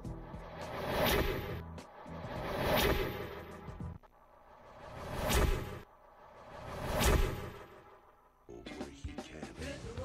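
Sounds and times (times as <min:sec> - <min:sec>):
whoosh sound effects: 0:00.4 - 0:08.1.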